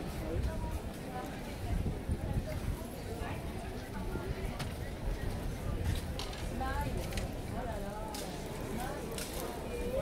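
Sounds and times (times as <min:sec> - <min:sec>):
footsteps on cobblestones: 0:00.0 - 0:10.0
people chattering: 0:00.0 - 0:10.0.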